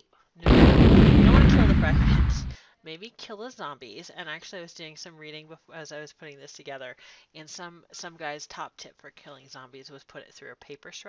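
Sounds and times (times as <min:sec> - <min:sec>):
explosion with deep rumble: 0:00.5 - 0:02.6.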